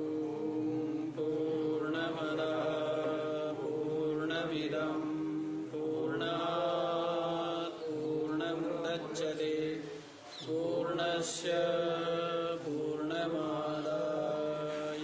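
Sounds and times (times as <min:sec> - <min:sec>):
man chanting: 0:00.0 - 0:15.0.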